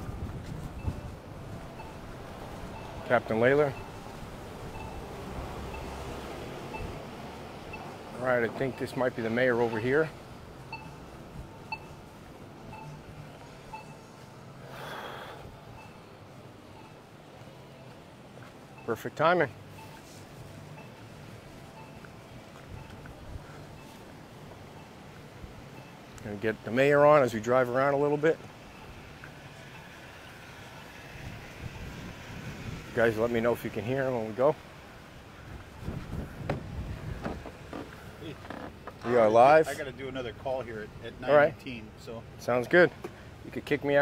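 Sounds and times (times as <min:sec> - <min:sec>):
wind rumbling on microphone: 0:00.0 - 0:03.0, 0:31.2 - 0:33.1, 0:35.4 - 0:37.7
crossing signal beeps: 0:00.8 - 0:14.9, 0:15.7 - 0:26.2, 0:27.8 - 0:30.9.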